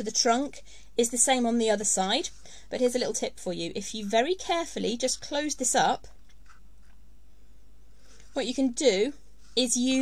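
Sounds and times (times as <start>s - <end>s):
faint soft sounds: 0.0s - 10.0s
room background hiss: 0.0s - 10.0s.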